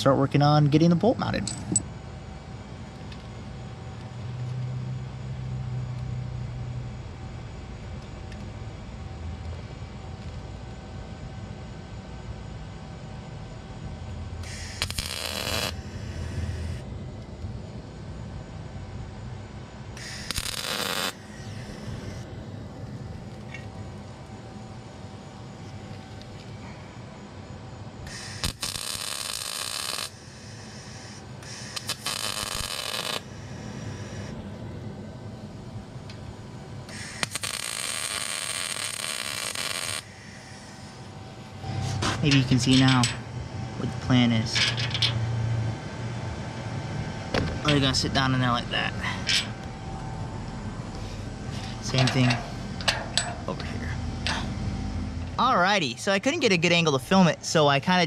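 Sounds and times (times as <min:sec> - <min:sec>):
welder buzzing: 0:14.3 - 0:18.0, 0:19.0 - 0:34.5, 0:35.6 - 0:44.3.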